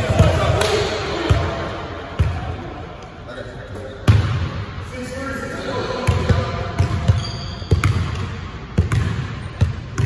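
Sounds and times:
players' voices: 0.0s - 7.2s.

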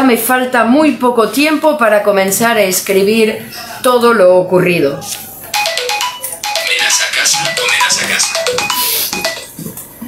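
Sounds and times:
mobile phone ringtone melody: 5.5s - 9.6s.

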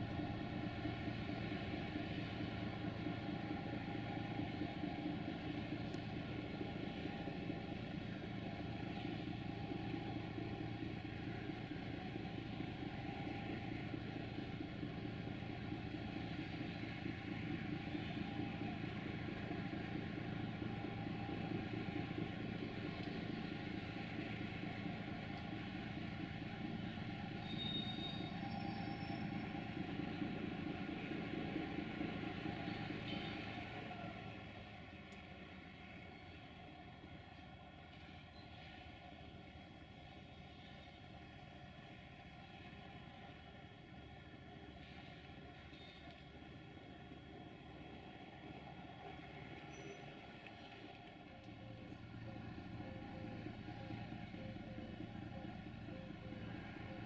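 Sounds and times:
diesel locomotive engines idling: 0.0s - 57.0s.

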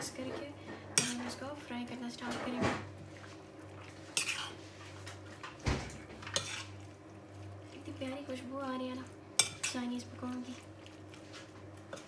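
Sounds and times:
spoon stirring thick batter: 2.4s - 5.6s, 6.2s - 8.3s.

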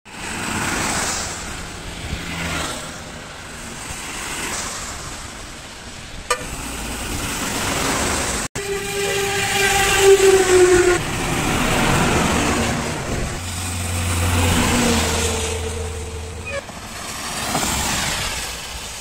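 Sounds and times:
tyre hiss on wet road: 0.1s - 8.5s, 16.7s - 19.0s
vehicle horn: 6.3s - 6.6s, 8.6s - 11.0s, 14.2s - 16.7s
short horn toot: 8.6s - 11.0s.

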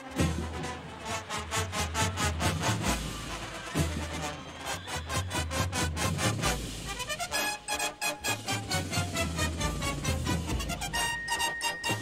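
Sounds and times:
brass bugles playing fast notes: 0.0s - 12.0s.

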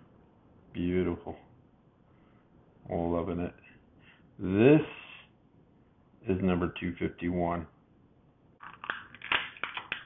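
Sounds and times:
plastic packaging crinkling: 8.6s - 10.0s.

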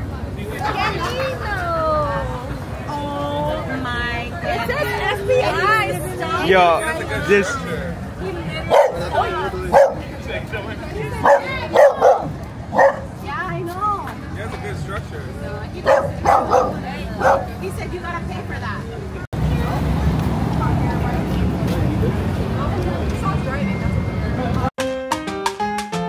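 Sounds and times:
street noise: 0.0s - 26.0s.

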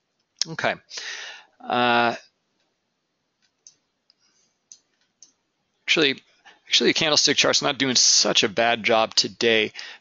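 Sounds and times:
faint computer mouse clicks: 3.4s - 5.4s.

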